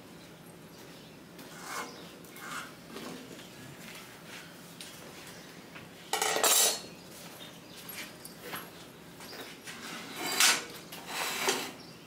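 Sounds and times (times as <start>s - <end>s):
metallic scrape and clatter: 1.5s - 2.8s, 9.8s - 11.8s.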